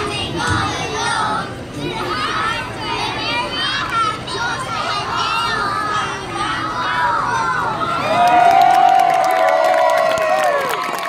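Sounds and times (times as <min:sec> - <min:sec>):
young children chattering: 0:00.8 - 0:08.0.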